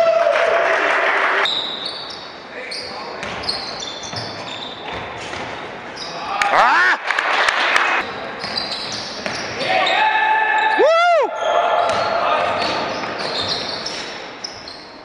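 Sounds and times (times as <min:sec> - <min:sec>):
sneakers squeaking: 0:01.4 - 0:06.3, 0:08.0 - 0:10.8, 0:11.4 - 0:15.0
ball bouncing on hardwood court: 0:03.2 - 0:03.5, 0:04.1 - 0:05.6, 0:11.8 - 0:13.6.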